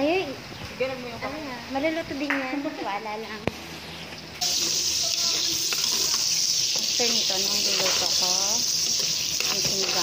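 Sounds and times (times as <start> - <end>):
shrimp sizzling in hot oil: 4.4 - 10.0.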